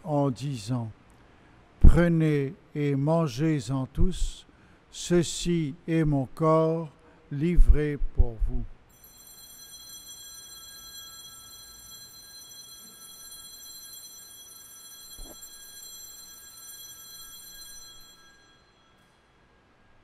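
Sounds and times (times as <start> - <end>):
small handbells ringing: 8.9 - 19.3.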